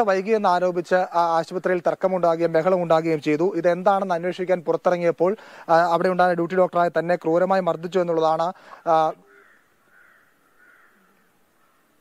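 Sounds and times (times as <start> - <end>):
distant crows cawing: 8.6 - 12.0.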